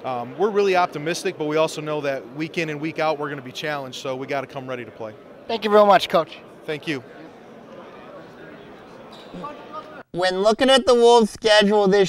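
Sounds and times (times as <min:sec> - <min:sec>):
many people talking indistinctly: 0:00.0 - 0:12.0.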